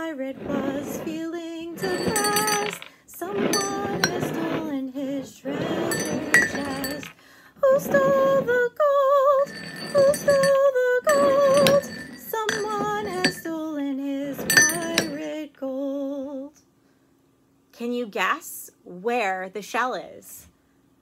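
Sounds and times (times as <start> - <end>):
woman singing unaccompanied: 0.0 - 16.6
ceramic mugs clinking on table: 1.8 - 2.9, 3.5 - 4.6, 5.9 - 7.1, 9.4 - 13.5, 14.4 - 15.2.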